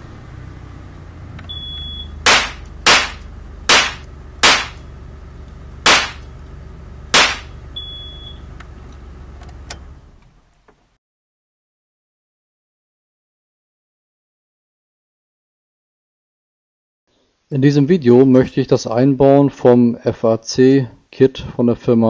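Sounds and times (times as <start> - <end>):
low steady hum: 0.0 - 10.7
shot timer beep: 1.5 - 2.2, 7.4 - 8.4
sharp gunshots: 2.2 - 4.8, 5.8 - 6.3, 7.1 - 7.6.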